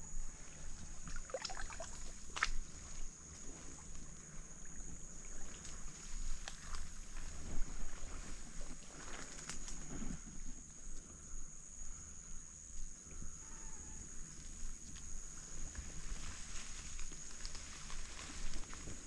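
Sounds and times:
grass and leaves rustling: 0.3s - 10.6s, 14.1s - 19.0s.

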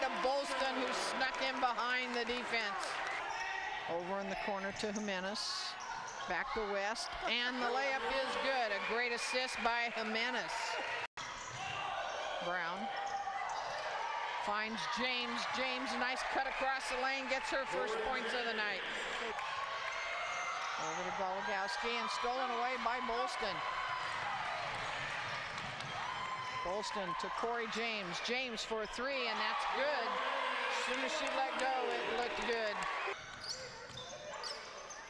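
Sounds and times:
sneaker squeaks: 11.2s - 12.3s, 33.2s - 35.0s
basketball bouncing on court: 24.1s - 26.6s.

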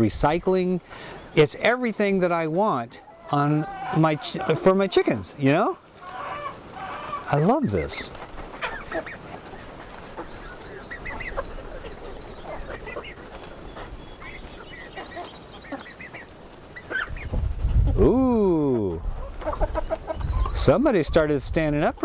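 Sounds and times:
chickens clucking and peeping: 0.0s - 22.0s
drawn-out falling bird call: 0.8s - 20.6s.

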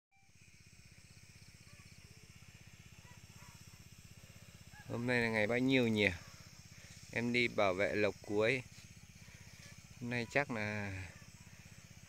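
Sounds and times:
small engine chugging: 0.2s - 12.0s
faint bird chirps: 1.2s - 3.9s, 4.6s - 12.0s.

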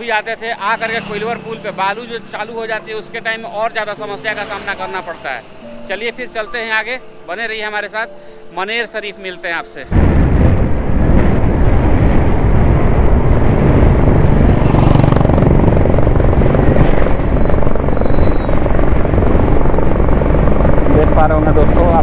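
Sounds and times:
road rush from fast vehicle: 0.0s - 7.4s, 9.9s - 22.0s
wind buffeting microphone: 9.9s - 22.0s.

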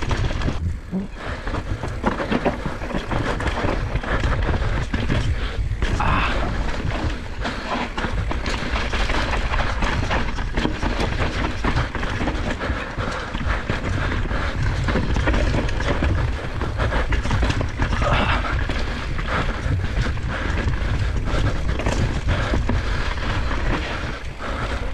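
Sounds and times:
bike rattling over bumps: 0.0s - 24.9s
bike tyres rumbling on gravel: 0.0s - 24.9s
wind buffeting microphone: 0.0s - 24.9s.

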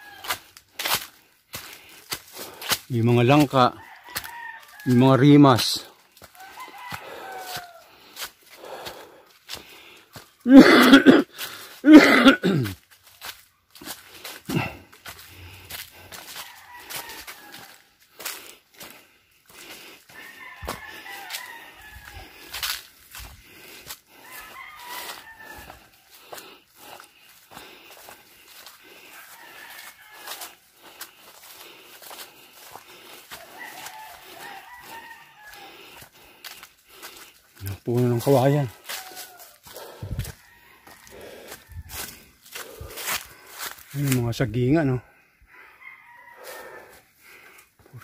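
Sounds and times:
rooster crowing: 0.0s - 0.6s, 3.3s - 8.0s, 14.5s - 27.1s, 27.9s - 44.1s, 44.8s - 47.1s
person vocal outbursts: 10.5s - 12.8s.

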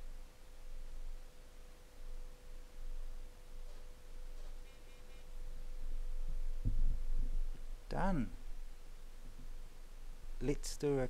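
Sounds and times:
electrical hum: 0.0s - 11.0s
low thud: 6.6s - 7.4s.

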